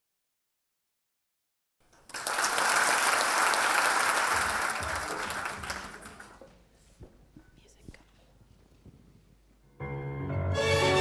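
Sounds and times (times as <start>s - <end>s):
audience applause: 1.9s - 6.6s.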